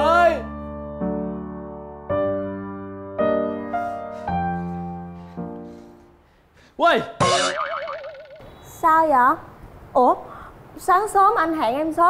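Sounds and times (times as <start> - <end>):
comic boing: 7.2 - 8.6.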